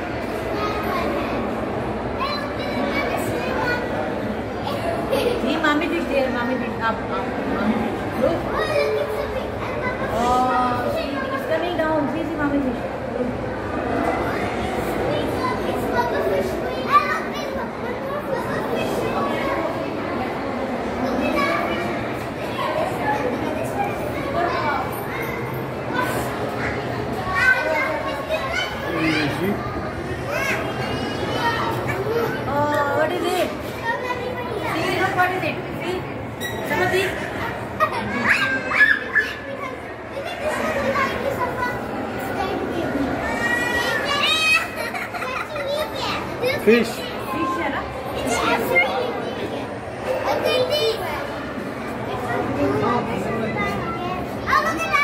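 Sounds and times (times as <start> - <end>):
children chattering: 0.0 - 55.0
child's excited call: 37.8 - 41.2
child's high-pitched cry: 43.2 - 45.9.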